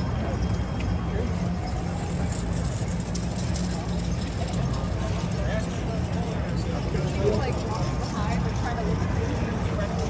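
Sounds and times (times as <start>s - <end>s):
street crowd chatter: 0.0s - 10.0s.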